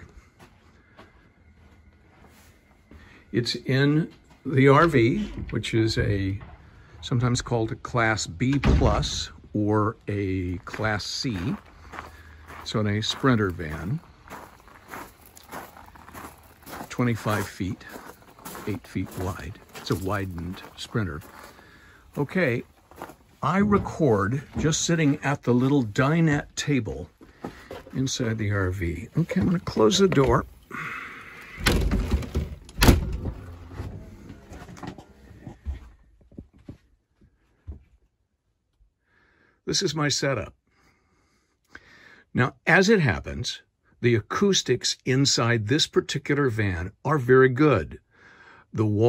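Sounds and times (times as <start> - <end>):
door banging shut: 8.4 - 9.4, 23.6 - 24.8, 31.6 - 34.1
footsteps on gravel: 10.2 - 31.1.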